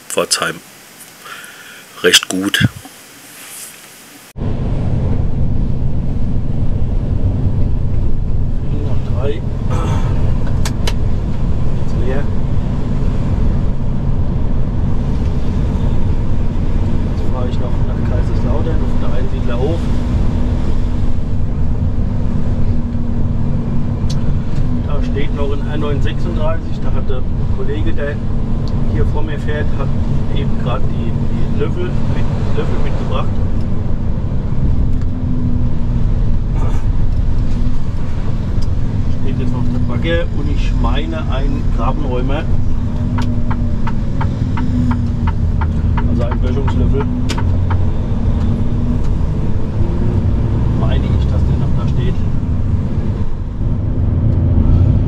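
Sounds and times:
diesel truck engine rumble: 4.3s - 55.0s.

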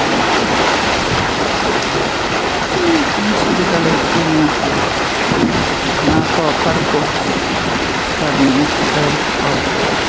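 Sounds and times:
water rushing through channel: 0.0s - 10.0s.

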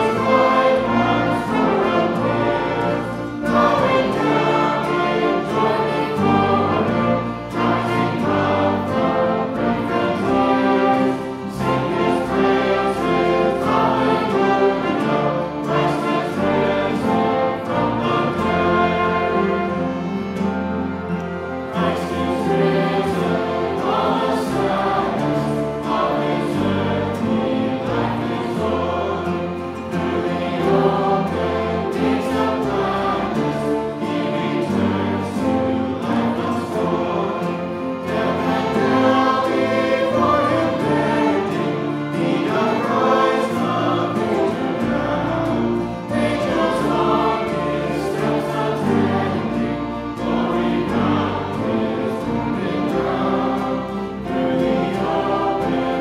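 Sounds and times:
congregation singing a hymn: 0.0s - 56.0s
violins playing: 0.0s - 56.0s.

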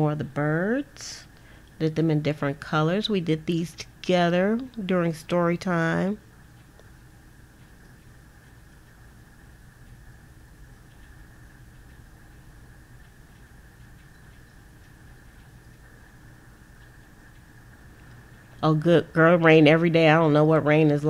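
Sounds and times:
low hum and hiss: 0.0s - 21.0s
faint ticks: 6.3s - 18.7s.

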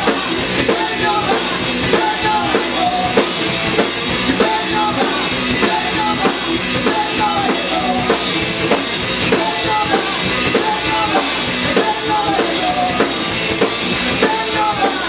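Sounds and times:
bass guitar: 0.0s - 15.0s
drum kit beat: 0.0s - 15.0s
electric guitar: 0.0s - 15.0s.

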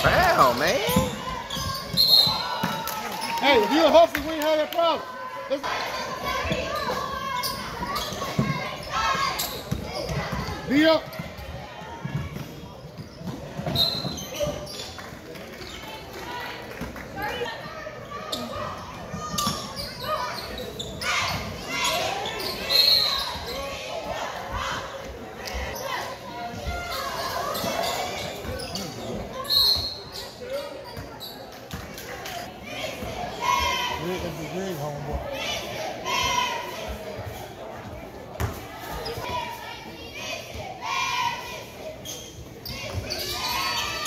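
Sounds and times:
players and spectators calling: 0.0s - 31.5s, 32.1s - 37.3s, 38.8s - 44.0s.

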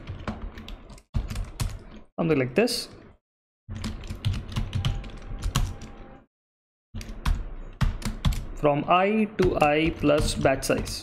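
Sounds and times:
computer keyboard typing: 0.0s - 2.0s, 3.7s - 6.0s, 7.0s - 8.6s, 9.4s - 11.0s.

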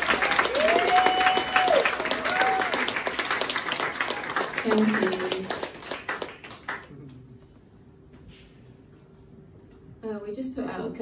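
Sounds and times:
audience clapping: 0.0s - 7.3s
person cheering: 0.2s - 3.0s.

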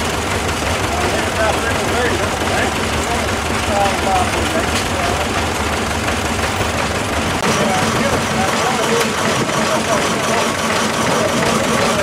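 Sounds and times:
engine running low rumble: 0.0s - 12.0s
people talking: 0.8s - 5.4s, 7.4s - 12.0s.

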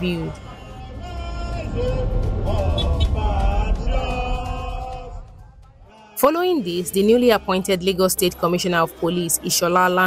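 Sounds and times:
steady low rumble: 0.0s - 5.9s
crowd singing together: 0.0s - 10.0s.

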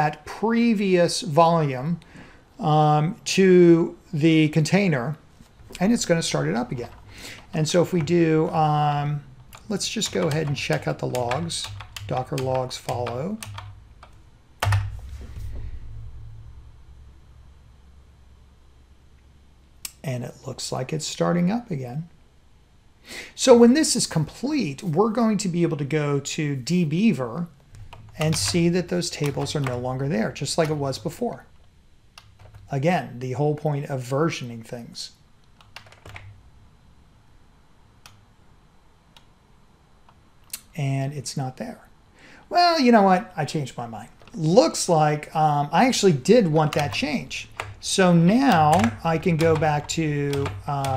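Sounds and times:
low hum: 4.8s - 21.0s, 23.6s - 33.1s
computer mouse clicking: 9.5s - 14.9s, 46.6s - 50.9s
keyboard keystroke: 9.5s - 15.0s, 27.8s - 29.8s, 46.6s - 50.9s.

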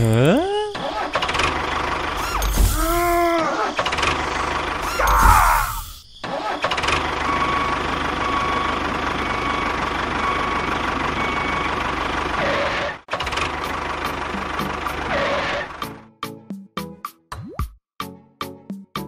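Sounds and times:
tractor engine chugging: 0.1s - 5.2s, 6.5s - 15.8s.

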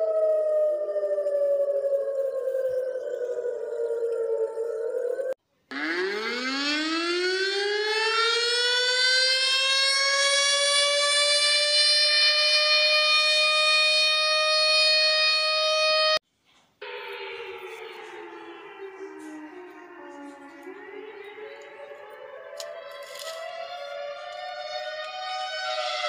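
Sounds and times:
low siren tone: 0.0s - 16.2s, 16.8s - 26.0s
siren tone falling: 0.0s - 16.2s, 16.8s - 26.0s
warning siren winding up: 0.0s - 16.2s, 16.8s - 26.0s.

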